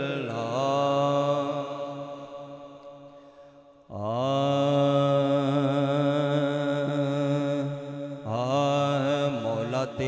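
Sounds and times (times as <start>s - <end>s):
man singing long held notes: 0.0s - 2.3s, 3.9s - 10.0s.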